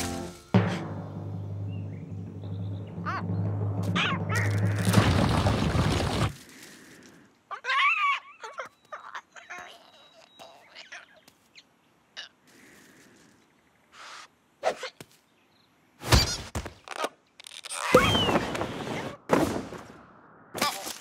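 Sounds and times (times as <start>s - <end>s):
tense music with low drone: 0.0s - 6.1s.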